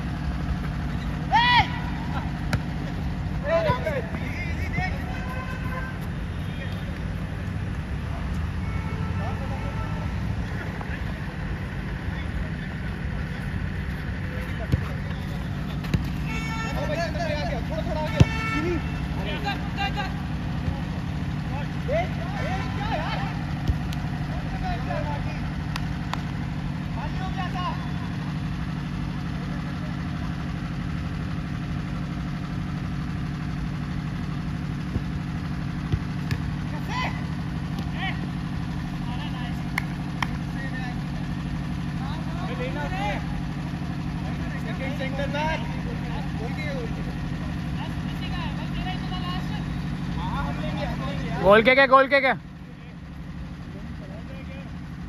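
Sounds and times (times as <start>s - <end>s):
distant players shouting: 0.5s - 11.1s, 11.8s - 30.8s, 34.6s - 52.4s
football kicked thuds: 2.4s - 2.8s, 15.7s - 16.2s, 23.6s - 23.9s, 35.8s - 36.5s.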